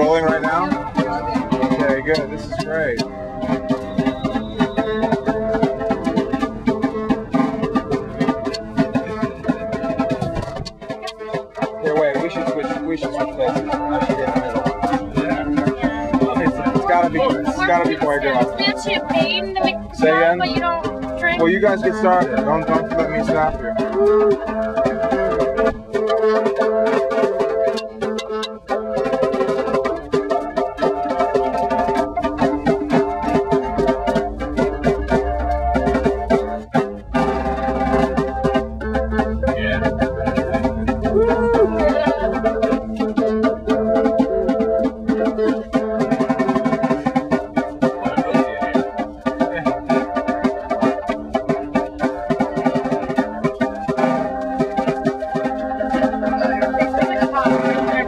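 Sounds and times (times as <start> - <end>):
quick percussion hits: 0.0 - 58.0
small band playing live music: 0.0 - 58.0.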